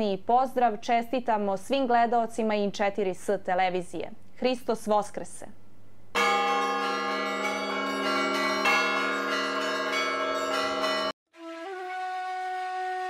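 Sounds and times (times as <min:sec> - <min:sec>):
church bells ringing: 0:06.2 - 0:11.2
held wind instrument tone: 0:11.4 - 0:13.0.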